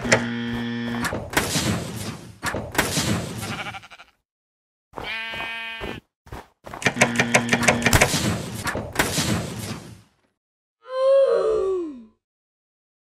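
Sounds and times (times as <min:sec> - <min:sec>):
clattering buzzing noise with hum: 0:00.0 - 0:02.8, 0:06.8 - 0:09.0
sheep bleating: 0:03.4 - 0:04.2, 0:05.0 - 0:06.1.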